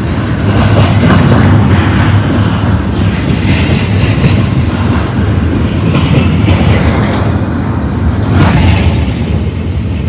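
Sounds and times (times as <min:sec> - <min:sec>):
rail clacks: 0:00.0 - 0:10.0
train wheels rumbling on rail: 0:00.0 - 0:10.0.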